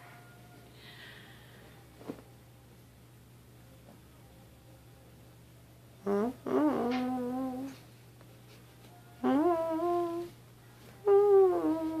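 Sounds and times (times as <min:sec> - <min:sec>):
person humming long notes: 0:06.0 - 0:07.8, 0:09.2 - 0:10.4, 0:11.0 - 0:12.0.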